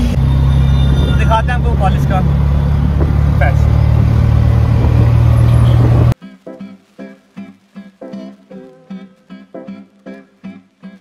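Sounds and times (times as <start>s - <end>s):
auto-rickshaw engine rumble: 0.0s - 6.2s
road noise: 0.0s - 6.2s.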